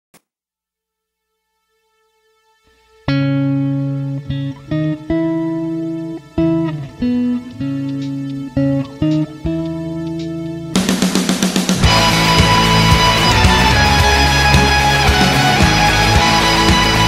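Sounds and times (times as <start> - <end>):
electric guitar chords: 2.7 - 17.0.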